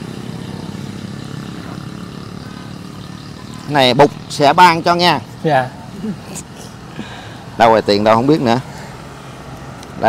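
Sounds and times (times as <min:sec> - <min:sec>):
engine humming steadily: 0:00.0 - 0:10.0.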